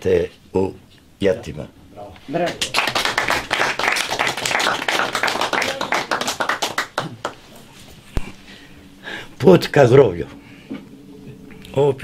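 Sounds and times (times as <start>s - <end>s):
audience applauding: 2.5s - 7.5s.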